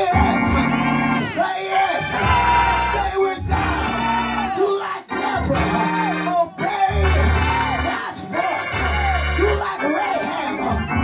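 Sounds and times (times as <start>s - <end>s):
live backing music: 0.0s - 11.0s.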